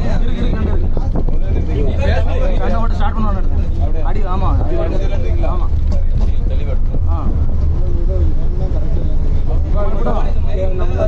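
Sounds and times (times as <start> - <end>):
bus engine rumble: 0.0 - 11.0
people talking loudly: 0.0 - 11.0.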